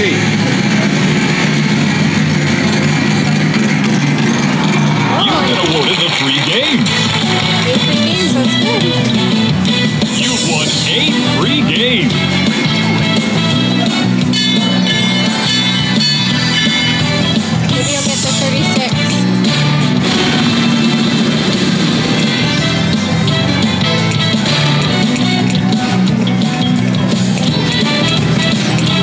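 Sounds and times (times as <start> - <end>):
background chatter: 0.0 - 20.0
electronic game music: 0.0 - 29.0
chiming jingles: 14.3 - 17.1.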